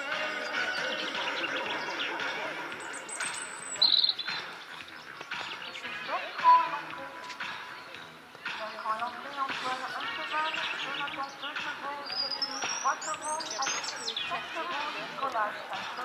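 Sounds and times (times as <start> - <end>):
high chirp: 0.0 - 5.9
indistinct background voices: 0.0 - 16.0
music: 0.0 - 16.0.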